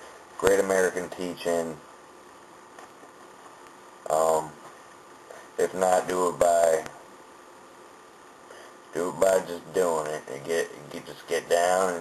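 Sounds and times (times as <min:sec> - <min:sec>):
faint microphone hiss: 0:00.0 - 0:12.0.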